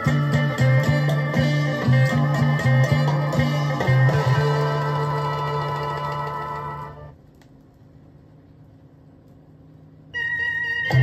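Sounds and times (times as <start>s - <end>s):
cha-cha band music from vinyl: 0.0s - 7.2s, 10.2s - 11.0s.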